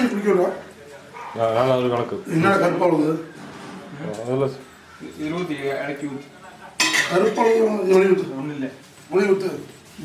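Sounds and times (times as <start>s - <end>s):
metal pot and utensils clattering: 6.8s - 8.1s.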